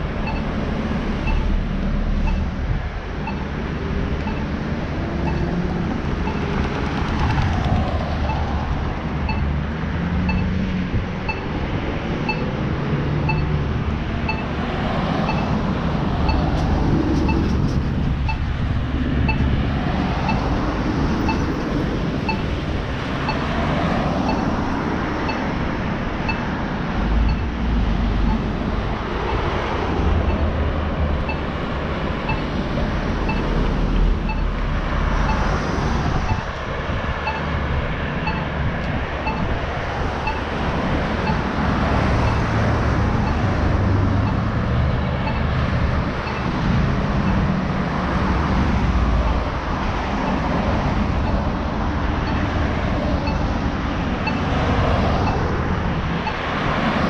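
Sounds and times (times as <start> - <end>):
cars passing on street: 0.0 - 57.0
faint repeating tick: 4.2 - 4.5.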